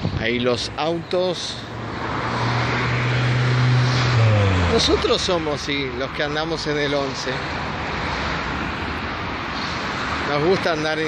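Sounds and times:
car passing close by: 0.7s - 10.8s.

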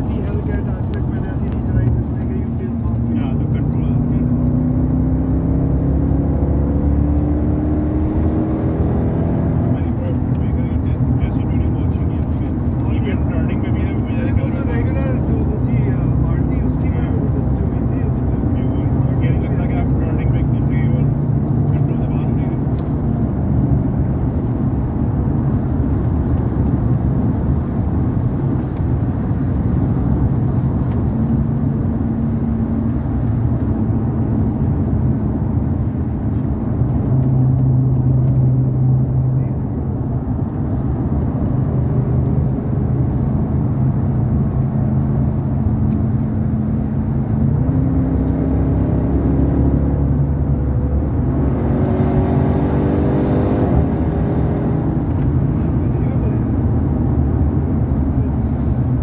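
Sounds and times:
car engine revving: 0.0s - 59.0s
road noise: 0.0s - 59.0s.

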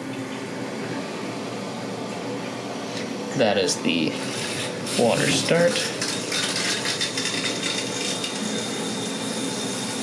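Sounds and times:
shower water running: 4.3s - 10.0s.

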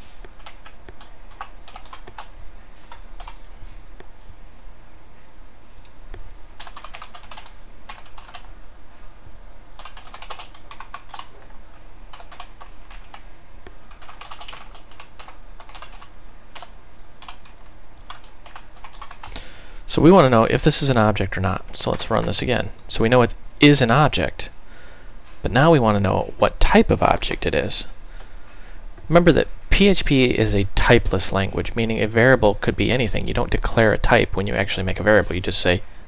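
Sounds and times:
keyboard typing: 0.2s - 3.5s, 5.8s - 8.5s, 9.8s - 19.4s.

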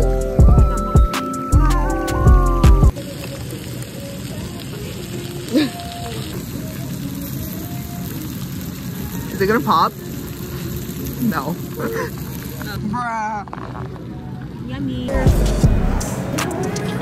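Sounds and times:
hip-hop music: 0.0s - 2.9s, 15.1s - 17.0s
food sizzling in stone bowl: 0.0s - 15.6s.

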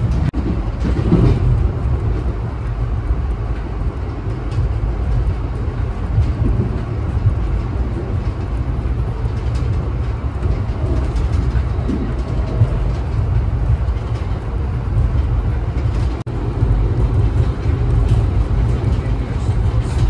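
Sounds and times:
train rumbling inside car: 0.0s - 20.0s.

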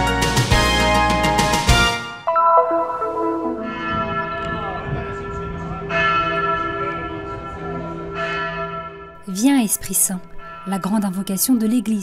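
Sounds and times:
church bell tolling: 2.3s - 12.0s.

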